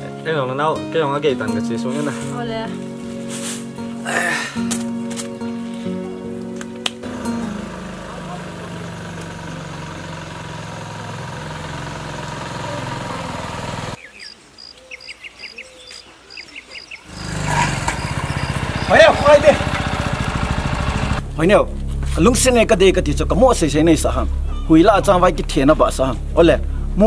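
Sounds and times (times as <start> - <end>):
motorcycle engine running: 7.0 - 14.0, 17.1 - 21.3
man talking: 18.9 - 19.7, 21.4 - 27.0.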